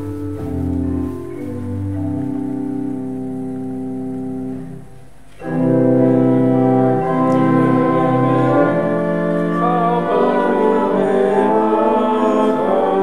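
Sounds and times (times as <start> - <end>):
organ playing sustained chords: 0.0 - 13.0.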